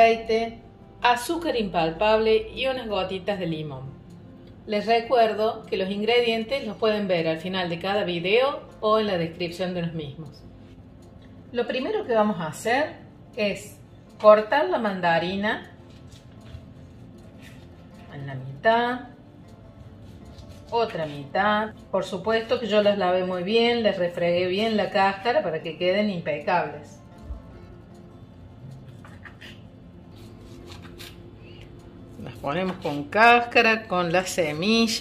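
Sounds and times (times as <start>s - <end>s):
knife cutting fruit peel: 28.9s - 31.7s.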